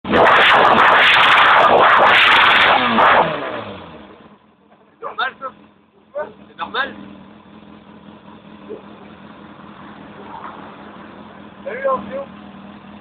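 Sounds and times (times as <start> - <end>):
motorcycle engine revving: 0.0 - 13.0
motorcycle engine idling: 4.2 - 13.0.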